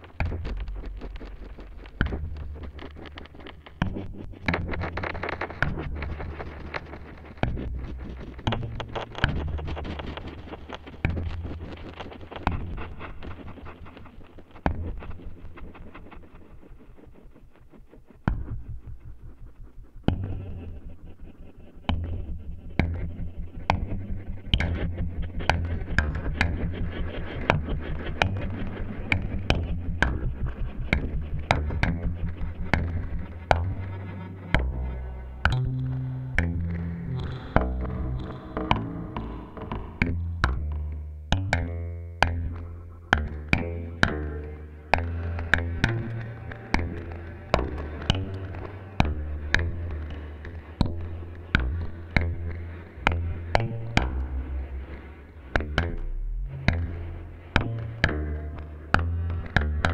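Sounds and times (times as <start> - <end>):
synthesizer bass line: 51.0 - 59.9.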